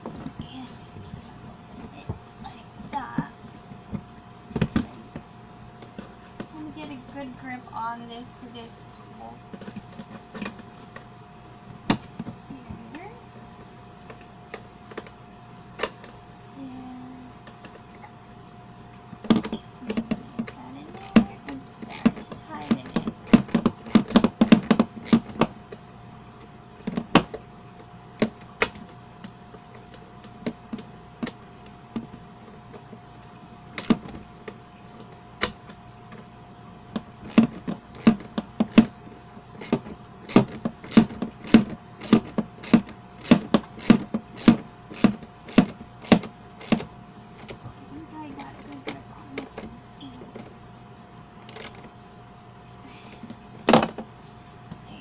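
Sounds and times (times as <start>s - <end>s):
faint steady hum: 0.0s - 55.0s
wrench clicking against bolt: 21.0s - 21.2s, 21.9s - 25.2s, 51.5s - 51.8s.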